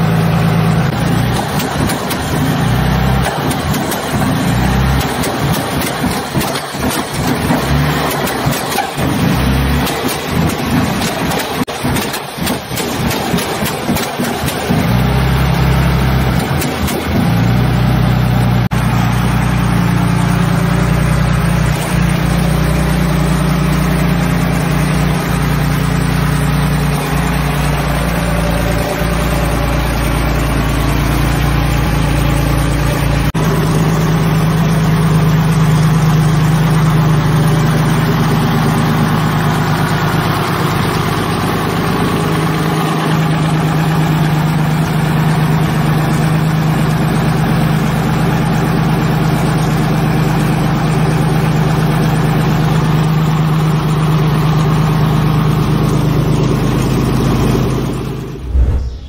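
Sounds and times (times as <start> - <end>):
aero engine running: 0.0 - 49.3, 54.5 - 59.0.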